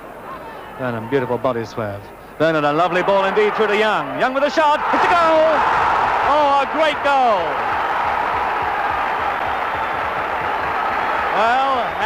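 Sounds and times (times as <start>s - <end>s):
stadium crowd cheering: 2.6s - 12.0s.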